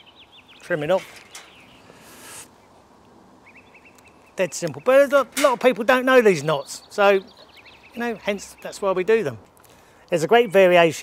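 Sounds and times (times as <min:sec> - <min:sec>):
faint bird chirps: 0:03.4 - 0:05.1.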